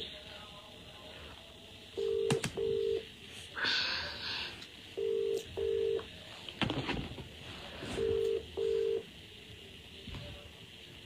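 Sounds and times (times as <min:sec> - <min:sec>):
telephone ringback tone: 0:02.0 - 0:03.0, 0:05.0 - 0:06.0, 0:08.0 - 0:09.0.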